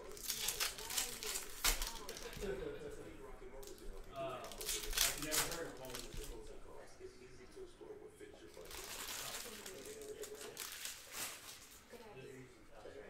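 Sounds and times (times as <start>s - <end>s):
card pack wrappers crinkling: 0.0s - 2.5s, 3.6s - 6.5s, 8.5s - 12.0s.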